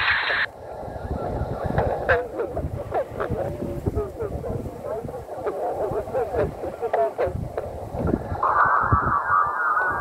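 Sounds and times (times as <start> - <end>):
radio band noise: 0.0 - 10.0
warbling garbled radio signal: 0.0 - 10.0.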